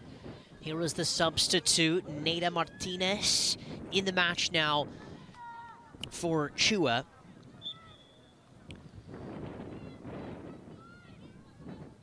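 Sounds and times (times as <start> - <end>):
ambient sports field noise: 0.0 - 12.0
distant shouting voices: 5.0 - 6.0.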